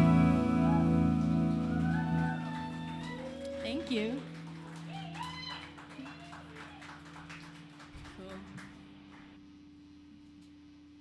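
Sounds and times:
electric guitar chord ringing: 0.0s - 3.2s
audience whooping and calling: 0.0s - 7.8s.

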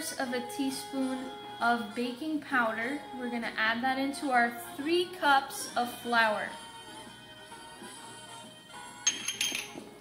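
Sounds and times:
quiet background music: 0.0s - 10.0s
metal bowl clinking: 9.0s - 9.9s.

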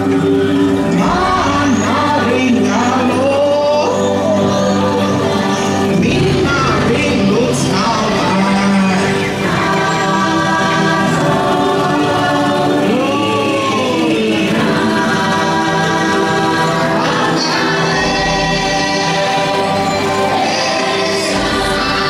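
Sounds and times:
choral singing over music: 0.0s - 22.0s.

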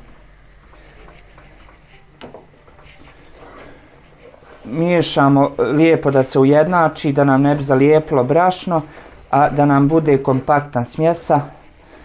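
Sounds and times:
wooden spoon stirring dough: 0.0s - 12.0s.

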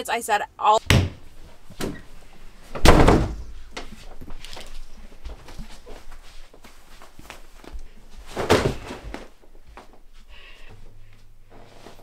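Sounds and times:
soft footsteps on indoor floor: 3.4s - 12.0s.

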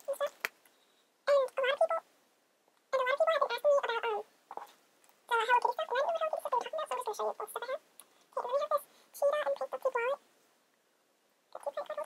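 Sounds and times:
high-pitched voice: 0.0s - 0.5s, 1.3s - 2.1s, 2.9s - 4.7s, 5.3s - 7.8s, 8.4s - 10.2s, 11.6s - 12.0s.

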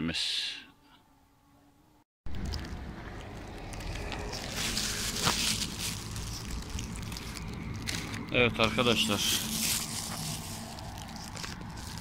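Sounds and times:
low vehicle rumble: 2.3s - 12.0s
vehicle passing on road: 2.3s - 12.0s.

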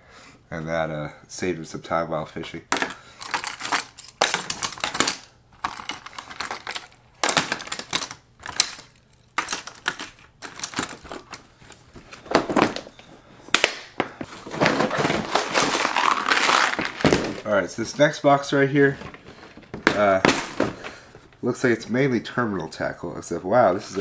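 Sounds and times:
lures clattering in plastic box: 2.7s - 13.0s, 13.6s - 17.5s, 18.8s - 21.4s.

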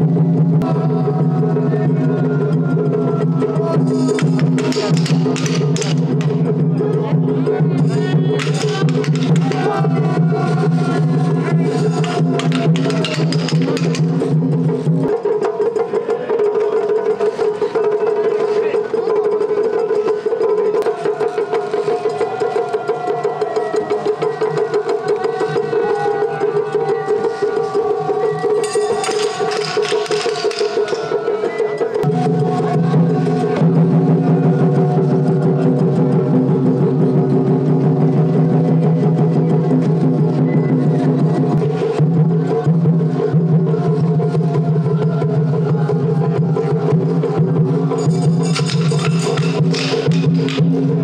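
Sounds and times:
fast taiko drum strokes: 0.0s - 51.0s.

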